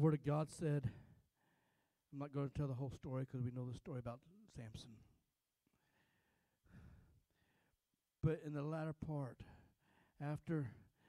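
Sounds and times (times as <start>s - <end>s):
faint breath into microphone: 0.9s - 2.0s, 5.7s - 7.8s, 9.4s - 10.2s.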